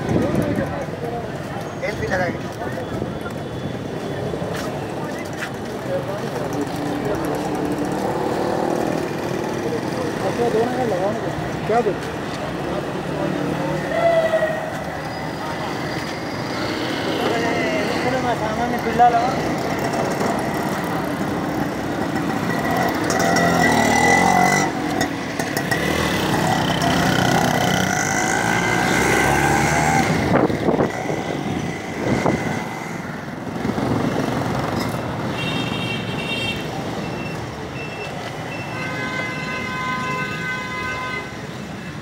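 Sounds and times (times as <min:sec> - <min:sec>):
passing vehicle engines: 0:00.0 - 0:38.7
car horns honking: 0:37.9 - 0:41.6.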